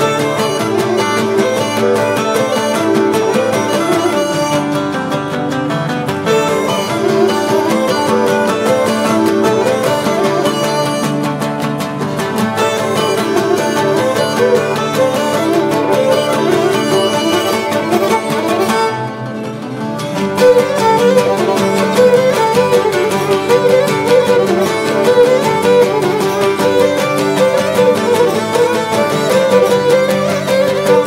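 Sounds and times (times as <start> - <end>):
bowed lyra fast melody: 0.0 - 31.0
plucked lutes strumming: 0.0 - 31.0.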